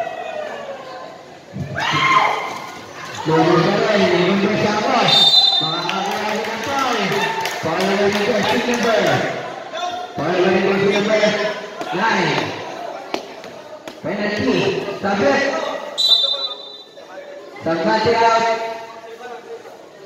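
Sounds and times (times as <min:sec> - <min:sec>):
man talking in large hall: 0:14.0 - 0:19.8.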